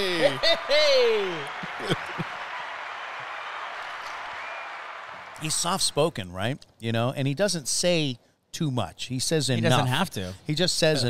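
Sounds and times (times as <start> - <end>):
recorded applause: 0.0 - 6.2.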